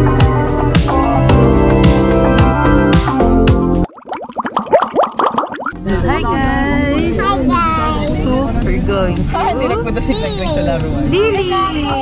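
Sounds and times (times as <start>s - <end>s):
bubbles popping: 3.9s - 5.8s.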